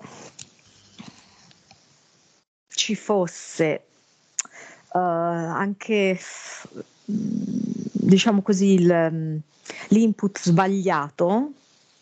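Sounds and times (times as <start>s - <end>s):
faint hiss on call line: 0.0s - 8.7s, 9.4s - 12.0s.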